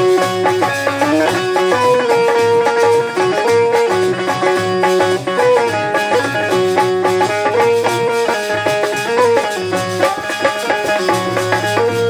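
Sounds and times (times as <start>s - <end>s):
harmonium melody: 0.0s - 12.0s.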